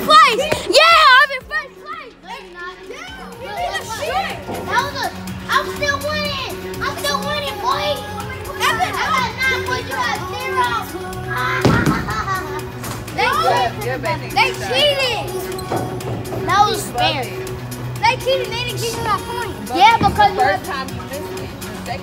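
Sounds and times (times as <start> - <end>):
background music with held notes: 0.0 - 22.0
children chattering and calling out: 0.0 - 22.0.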